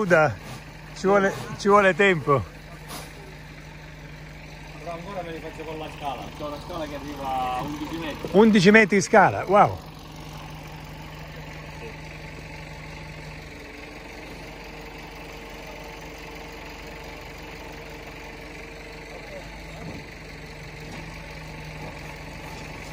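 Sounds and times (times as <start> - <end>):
engine humming steadily: 0.0 - 22.9.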